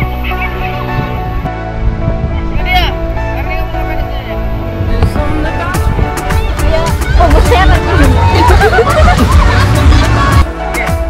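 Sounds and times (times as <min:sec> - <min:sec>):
music with heavy bass: 0:04.3 - 0:11.0
children chattering: 0:06.1 - 0:10.9.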